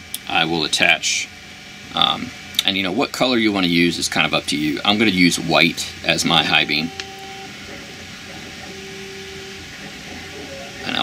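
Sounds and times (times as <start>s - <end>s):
background hum and hiss: 0.0s - 11.0s
faint steady tones: 3.8s - 11.0s.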